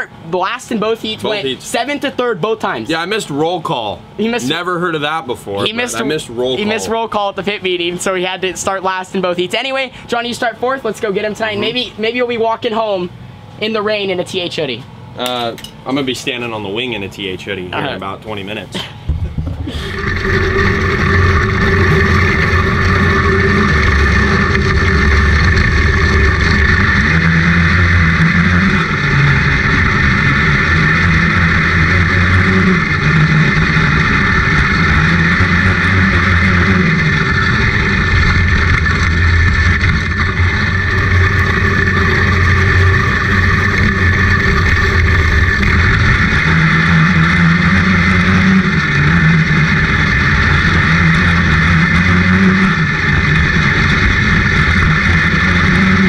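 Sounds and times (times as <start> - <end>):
kart engine racing: 19.2 - 56.0.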